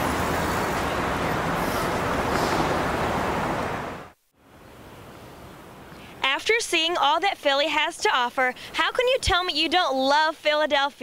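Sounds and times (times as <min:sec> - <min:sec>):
passing cars hum: 0:00.0 - 0:04.2.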